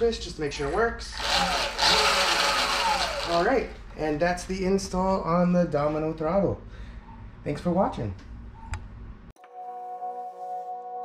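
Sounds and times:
electric motor whine: 1.2s - 3.6s
mechanical running noise: 1.2s - 3.6s.

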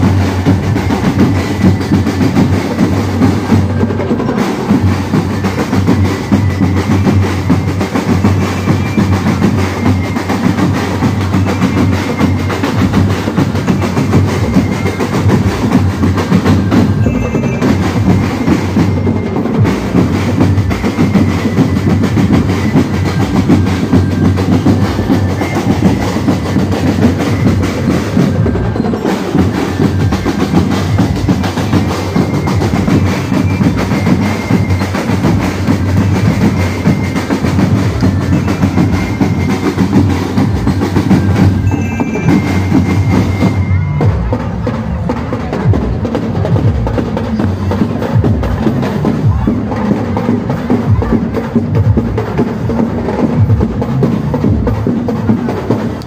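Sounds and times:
marching snare and bass drums: 0.0s - 56.0s.

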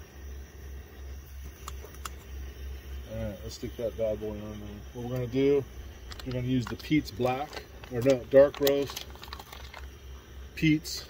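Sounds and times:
camp stove burner rumbling: 0.0s - 11.0s.

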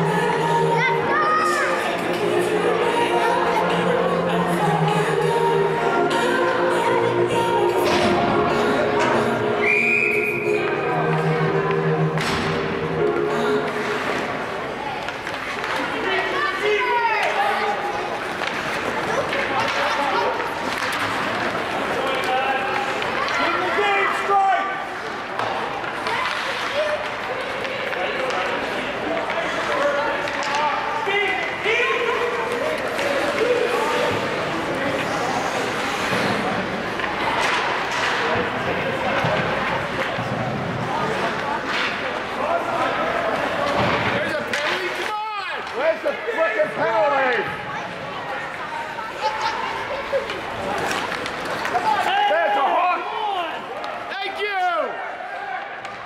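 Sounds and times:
music over public address: 0.0s - 18.2s
puck and stick thuds: 10.6s - 14.4s, 18.2s - 23.4s, 35.8s - 45.9s.

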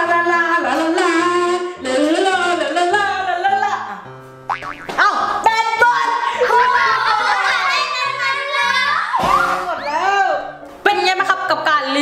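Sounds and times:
wobbling comic boing: 4.5s - 5.4s.

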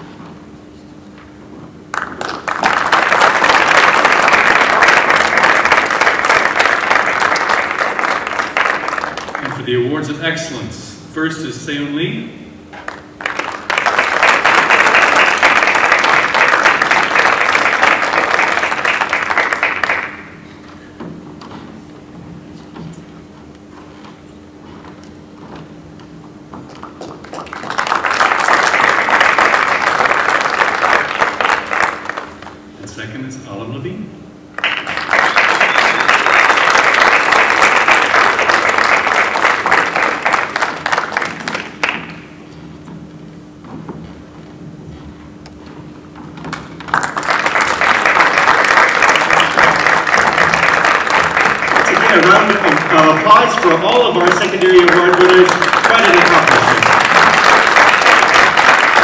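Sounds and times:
audience applauding: 1.9s - 9.9s, 12.8s - 20.5s, 26.6s - 32.7s, 34.5s - 42.4s, 46.4s - 59.0s.

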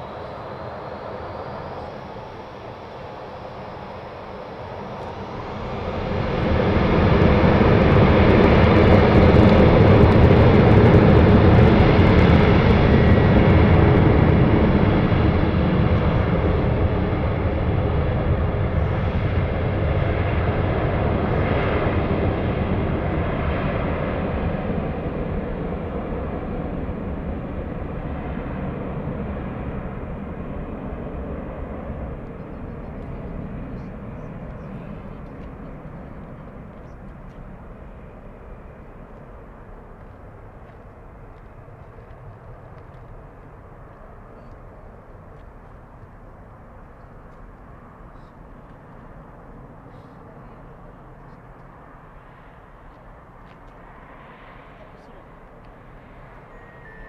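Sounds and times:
jet engines spooling up: 0.0s - 19.8s.

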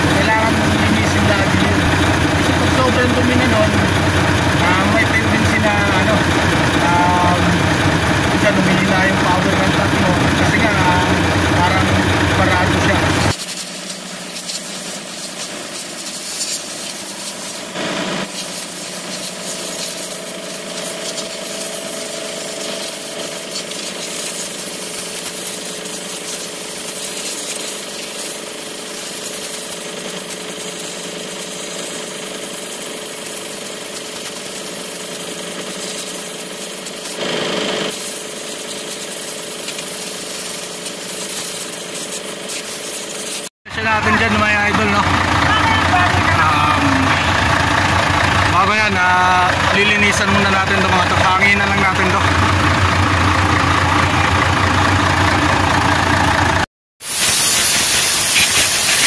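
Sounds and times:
compressed air hissing from blow gun: 12.4s - 37.2s, 37.9s - 43.5s, 57.0s - 59.0s.

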